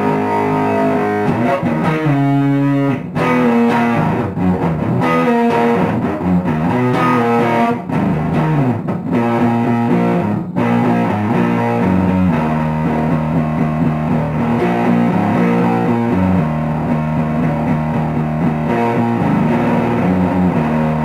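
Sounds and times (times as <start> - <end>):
distorted electric guitar: 0.0 - 21.0.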